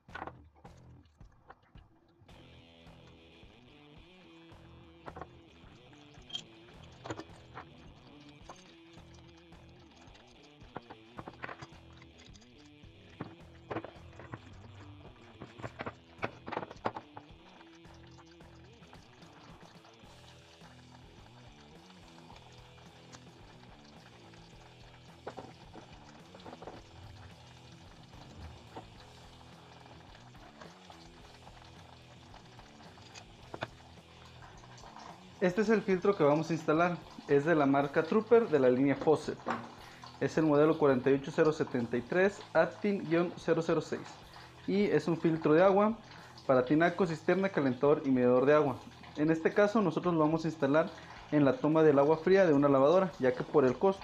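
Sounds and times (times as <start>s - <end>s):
soft background music: 0.0s - 54.0s
metal pipe fittings clicking: 5.0s - 42.7s.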